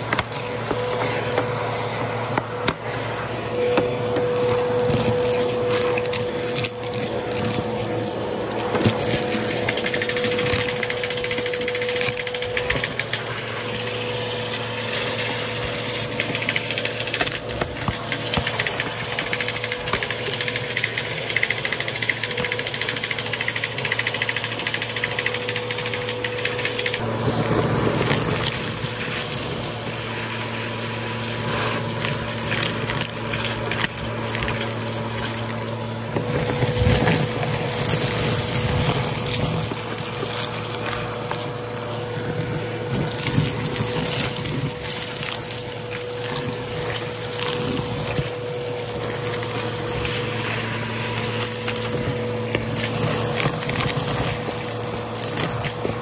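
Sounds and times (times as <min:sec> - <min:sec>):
debris rattling into vacuum hose: 0:00.0 - 0:27.0, 0:27.6 - 0:56.0
vacuum cleaner running: 0:00.0 - 0:56.0.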